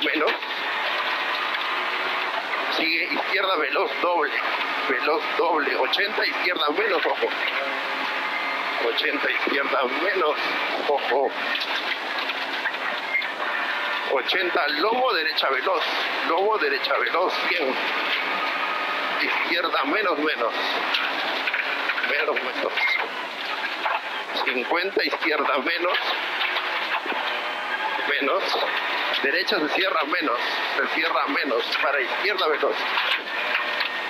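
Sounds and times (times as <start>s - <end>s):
car engine and tyres on gravel: 0.0s - 34.0s.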